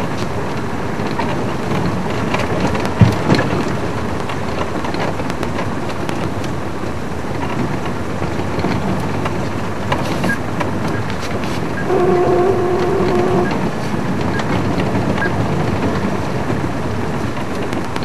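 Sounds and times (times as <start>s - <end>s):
vehicle engine and tyre noise: 0.0s - 18.0s.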